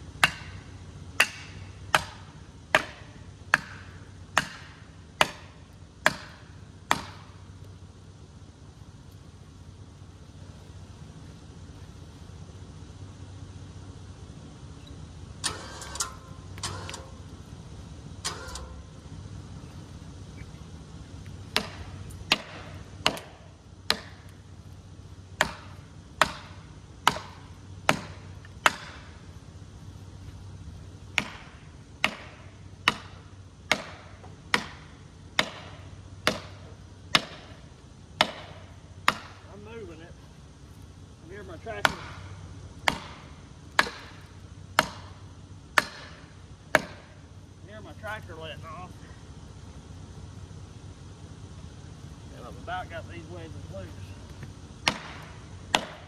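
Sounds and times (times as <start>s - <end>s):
tractor engine idling: 0.0s - 56.0s
hammer striking wedges: 0.2s - 7.4s, 21.5s - 24.3s, 25.4s - 29.1s, 31.2s - 37.6s, 38.2s - 39.5s, 41.7s - 45.2s, 45.8s - 47.2s, 54.8s - 56.0s.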